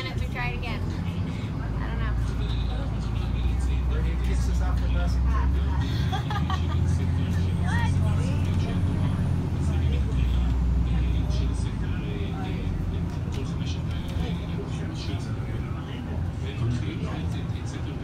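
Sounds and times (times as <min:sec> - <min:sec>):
bus engine and road rumble: 0:00.0 - 0:18.0
faint passenger voices: 0:00.0 - 0:18.0.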